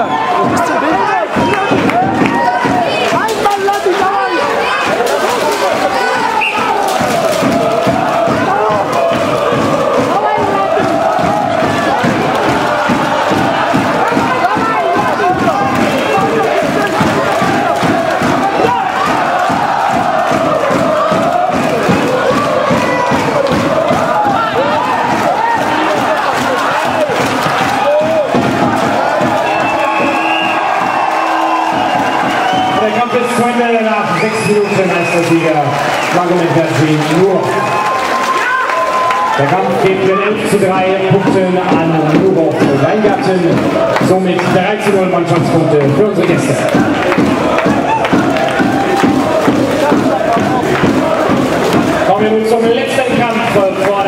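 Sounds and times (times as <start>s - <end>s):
crowd shouting and cheering: 0.0s - 54.0s.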